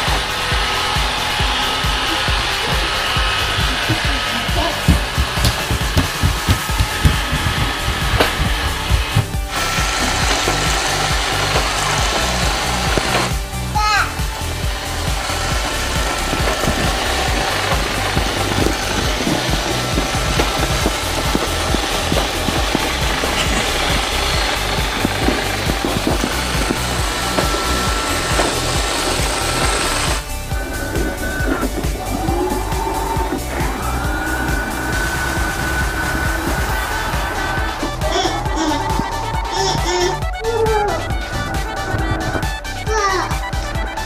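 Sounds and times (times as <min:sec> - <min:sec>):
background music: 0:00.0 - 0:44.0
robot vacuum motor running: 0:00.0 - 0:44.0.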